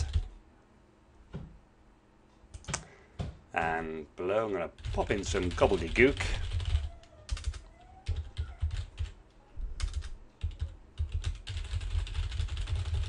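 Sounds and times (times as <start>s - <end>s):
computer keyboard typing: 0.0s - 0.3s, 4.4s - 9.2s, 9.8s - 13.0s.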